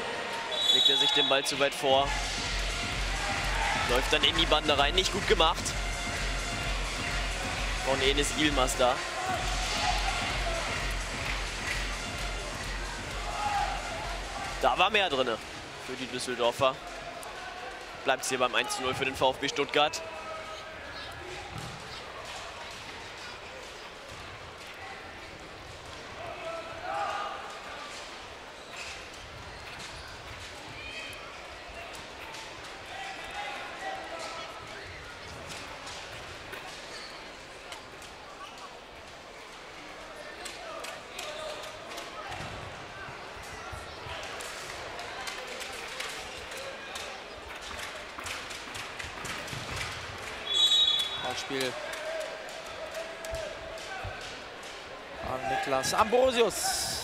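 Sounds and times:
crowd murmuring and calling out: 0:00.0 - 0:29.2, 0:29.8 - 0:57.0
ball kicked and bounced on court: 0:21.4 - 0:22.0.

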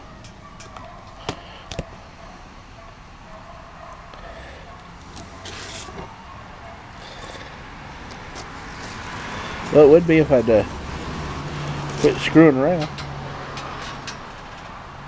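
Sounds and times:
passing traffic: 0:00.0 - 0:15.0.

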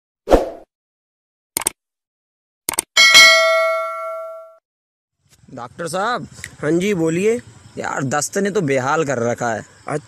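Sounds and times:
quick double clicks: 0:01.6 - 0:01.8, 0:02.7 - 0:02.9
bright bell ding: 0:03.0 - 0:04.6.

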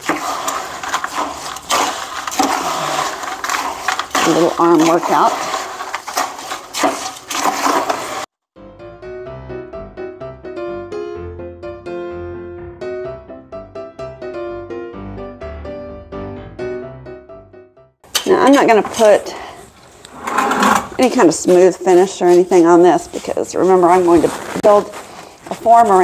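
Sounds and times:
trowel stirring concrete in bucket: 0:00.0 - 0:08.3, 0:18.2 - 0:26.0
keyboard background music: 0:08.6 - 0:18.0.

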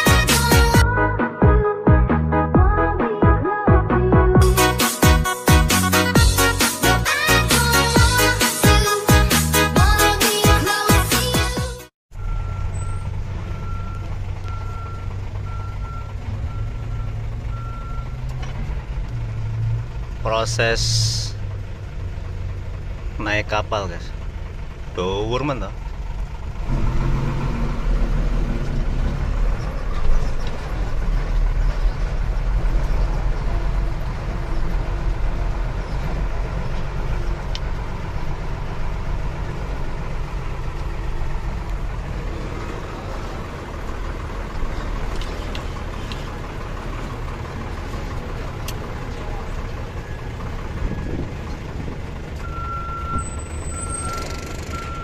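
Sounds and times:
truck diesel engine droning: 0:00.0 - 0:55.0
short beeps: 0:12.2 - 0:18.1, 0:52.4 - 0:55.0.

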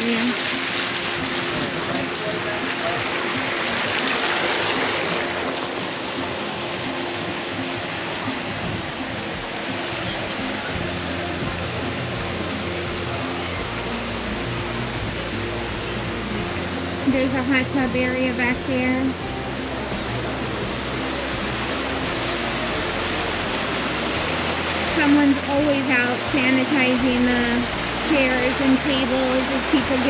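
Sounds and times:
water splashing into pool: 0:00.0 - 0:13.6.

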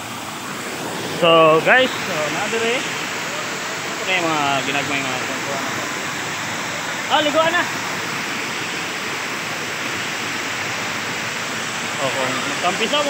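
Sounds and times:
waterfall rushing over rocks: 0:00.0 - 0:13.0.

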